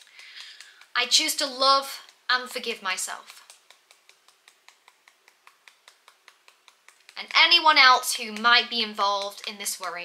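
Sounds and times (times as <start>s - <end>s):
fingertips tapping on hand: 0.0s - 10.0s.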